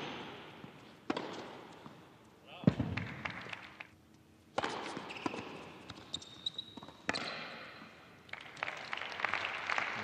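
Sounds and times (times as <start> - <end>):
tennis ball strikes echoing: 0.0 - 1.7, 4.5 - 5.6, 7.0 - 7.8.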